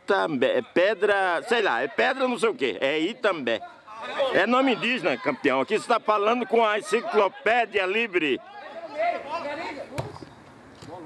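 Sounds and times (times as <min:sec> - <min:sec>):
open-air background noise: 0:00.0 - 0:11.0.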